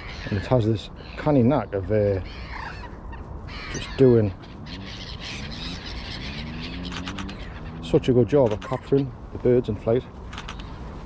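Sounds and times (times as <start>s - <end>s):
ducks calling: 0.0s - 9.2s
gulls calling: 0.0s - 11.0s.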